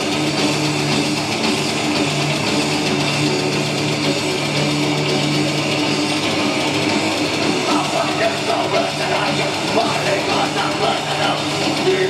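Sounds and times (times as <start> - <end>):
distorted electric guitars: 0.0 - 12.0.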